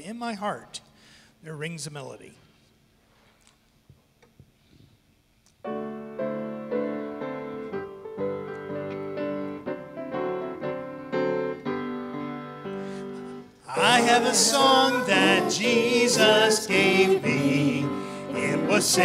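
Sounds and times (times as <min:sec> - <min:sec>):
piano playing hymn chords: 0:05.6 - 0:19.0.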